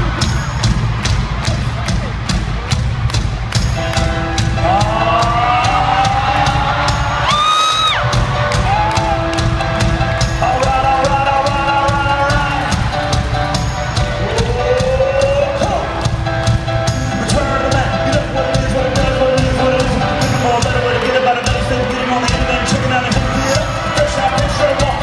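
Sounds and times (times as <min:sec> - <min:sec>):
amplified live band music: 0:00.0 - 0:25.0
crowd noise: 0:00.0 - 0:25.0.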